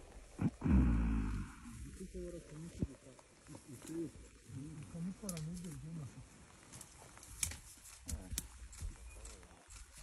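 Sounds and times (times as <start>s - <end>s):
gorilla grunting: 0.4s - 1.8s.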